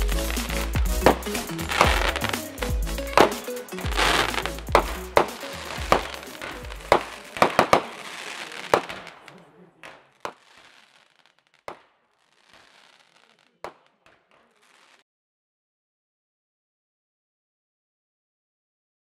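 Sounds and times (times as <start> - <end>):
background music: 0.0 - 8.4
fireworks bangs and crackling: 0.0 - 15.0.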